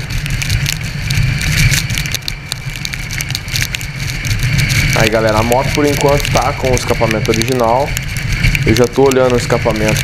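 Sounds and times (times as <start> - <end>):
rain clicking on camera: 0.0 - 10.0
wind rumble on microphone: 0.0 - 10.0.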